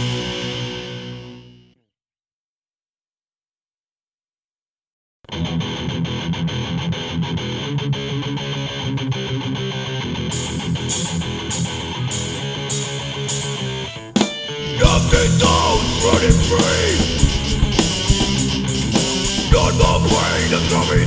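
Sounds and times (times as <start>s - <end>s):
punk band playing: 0.0s - 1.4s, 10.3s - 21.0s.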